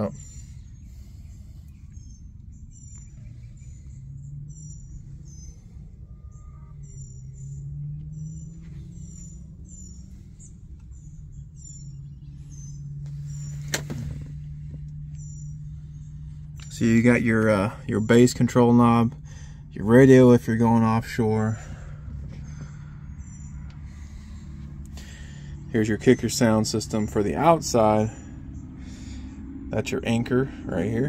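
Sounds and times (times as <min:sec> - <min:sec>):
low hum: 0:00.0 - 0:31.0
small birds chirping: 0:00.0 - 0:31.0.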